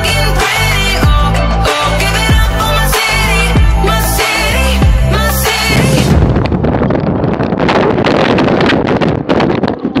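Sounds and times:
wind rushing over microphone: 0:03.3 - 0:10.0.

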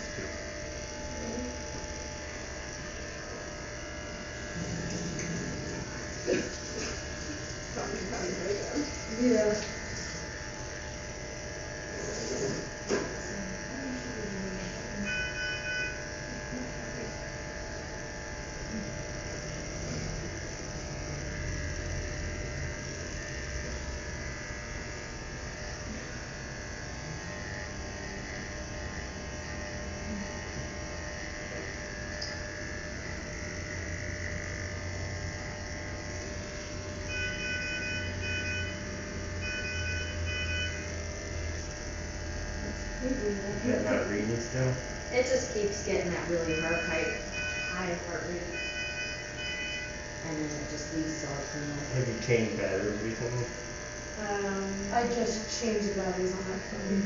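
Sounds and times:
electric hair clippers buzzing: 0:00.0 - 0:57.0
electronic monitor beeps: 0:15.0 - 0:16.0, 0:37.1 - 0:40.9, 0:46.4 - 0:47.8, 0:48.5 - 0:50.0.

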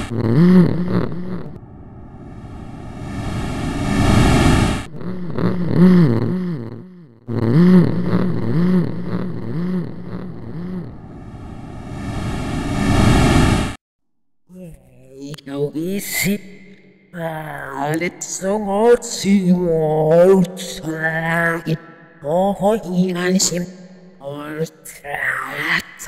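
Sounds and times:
hissing noise swells: 0:01.7 - 0:04.9, 0:11.0 - 0:13.8.

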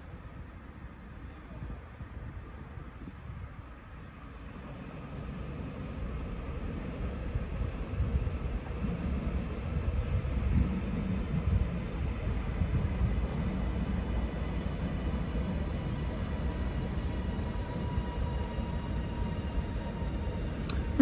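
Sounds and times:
train rumble: 0:00.0 - 0:21.0.

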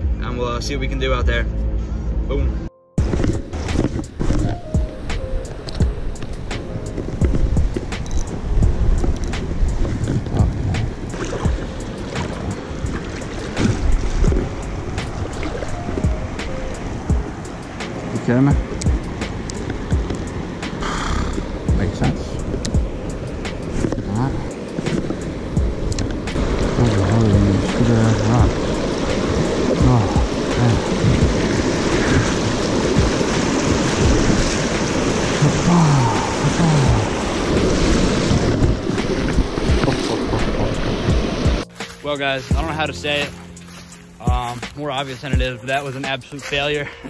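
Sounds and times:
background music: 0:00.0 - 0:47.0
river water rushing: 0:03.0 - 0:47.0.

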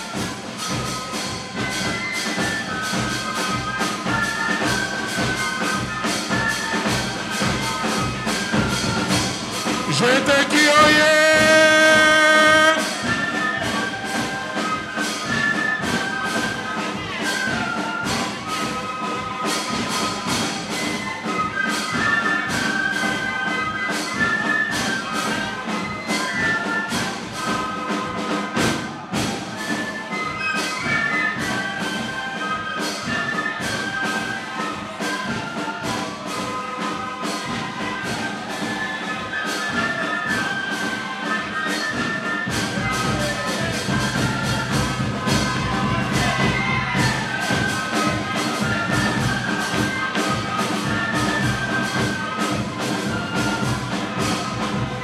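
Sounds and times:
brass band playing a hymn: 0:00.0 - 0:55.0.

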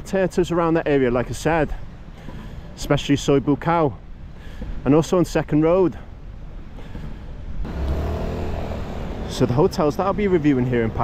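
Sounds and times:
vehicle engine passing: 0:07.6 - 0:09.9.

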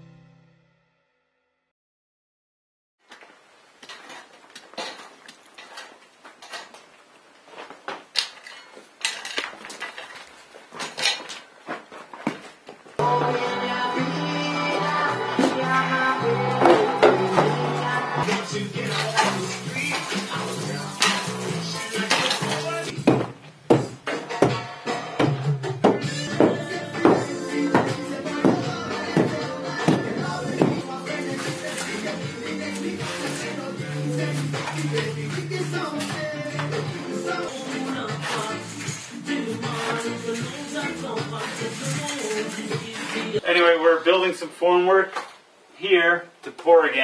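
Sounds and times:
background music with sustained notes: 0:13.0 - 0:23.0, 0:24.6 - 0:43.4.

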